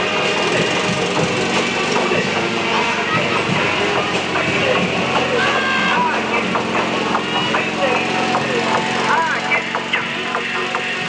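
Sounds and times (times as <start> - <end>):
fast rattling clatter: 0.0 - 11.0
parade music: 0.0 - 11.0.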